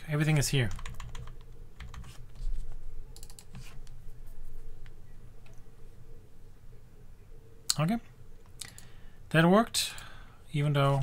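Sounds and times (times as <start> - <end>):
low steady hum: 0.0 - 11.0
keyboard keys tapping: 0.7 - 2.2.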